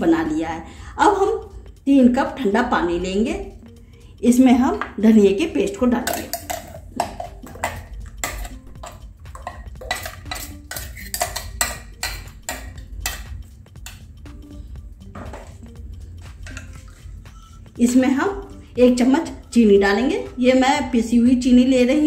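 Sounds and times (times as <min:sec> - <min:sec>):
metal spoon scraping steel jar: 0:06.0 - 0:14.1, 0:16.4 - 0:17.7.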